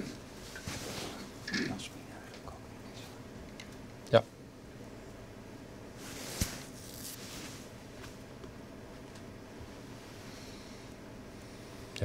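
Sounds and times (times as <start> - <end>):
faint rustling: 6.0 - 8.2.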